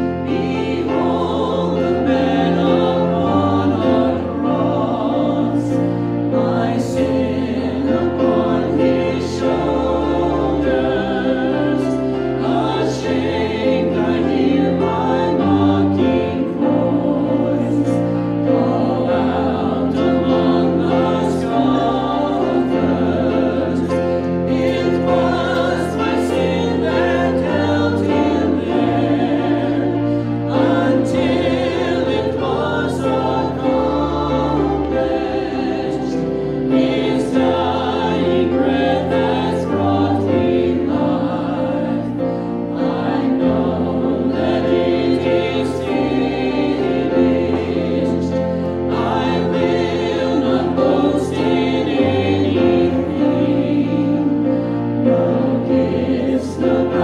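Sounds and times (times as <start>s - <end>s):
congregation singing worship song: 0.0s - 57.0s
instrumental accompaniment: 0.0s - 57.0s.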